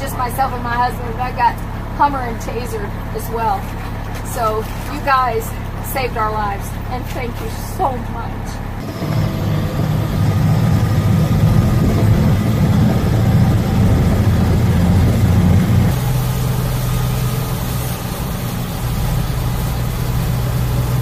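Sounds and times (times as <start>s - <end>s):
truck diesel engine drone: 0.0s - 21.0s.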